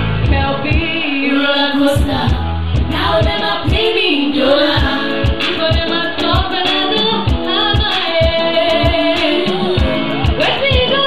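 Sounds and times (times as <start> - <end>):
loud backing music: 0.0 - 11.0
person singing: 0.2 - 11.0.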